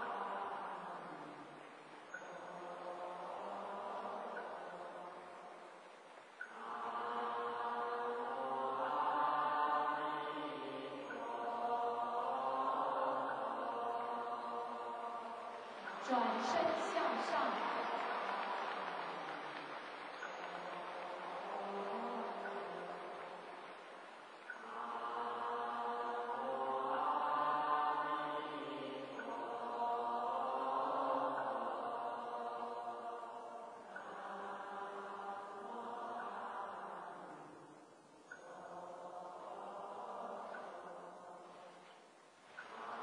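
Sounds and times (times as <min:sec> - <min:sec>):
slow chanting with held notes: 0:00.0 - 0:43.0.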